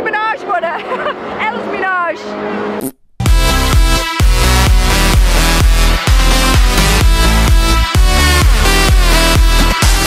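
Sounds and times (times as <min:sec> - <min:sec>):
people talking and laughing: 0:00.4 - 0:01.7.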